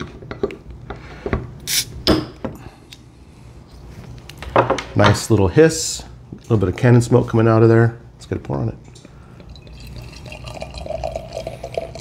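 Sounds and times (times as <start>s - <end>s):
carbonation hiss: 1.6s - 2.0s.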